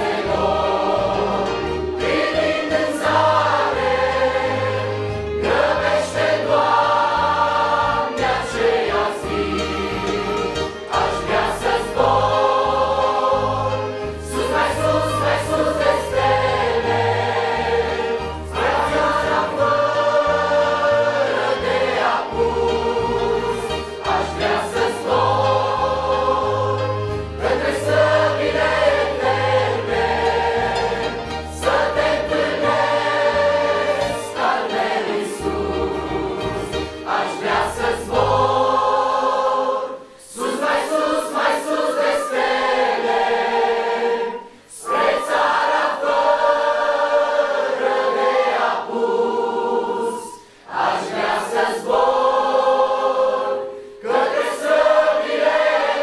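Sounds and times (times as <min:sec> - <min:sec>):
mixed choir singing a hymn: 0:00.0 - 0:56.0.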